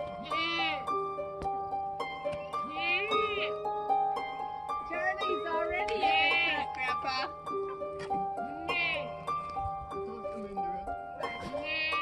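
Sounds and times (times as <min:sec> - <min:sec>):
plucked string music: 0:00.0 - 0:12.0
goat kid bleating: 0:00.1 - 0:00.9, 0:02.5 - 0:03.7, 0:05.9 - 0:07.3, 0:08.6 - 0:09.1, 0:11.6 - 0:12.0.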